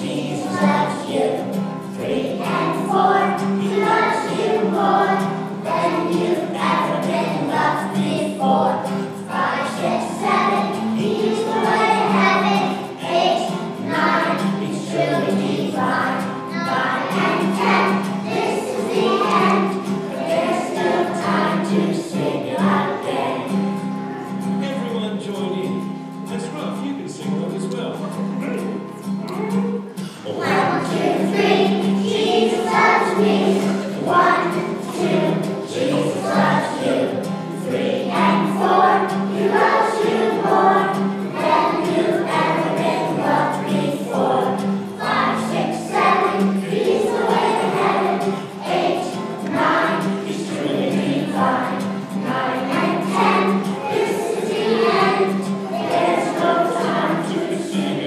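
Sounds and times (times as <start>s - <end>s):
children singing in unison: 0.0s - 24.5s, 30.2s - 58.0s.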